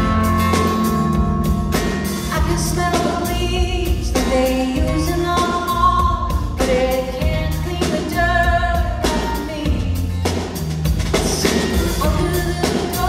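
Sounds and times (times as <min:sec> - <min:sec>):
acoustic guitar strumming: 0:00.0 - 0:02.8
steady bass line: 0:00.0 - 0:13.0
woman singing: 0:02.3 - 0:10.2, 0:11.2 - 0:13.0.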